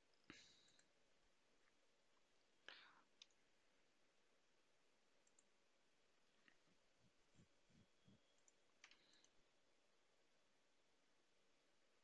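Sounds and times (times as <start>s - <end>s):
faint clicks: 1.6s - 3.4s, 5.2s - 5.6s, 7.4s - 9.4s.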